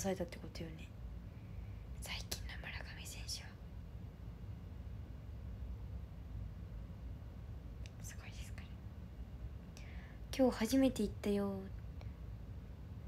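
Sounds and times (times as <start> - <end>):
steady low hum: 0.0 - 13.0
woman whispering: 2.0 - 3.6, 7.9 - 8.8, 10.3 - 11.7.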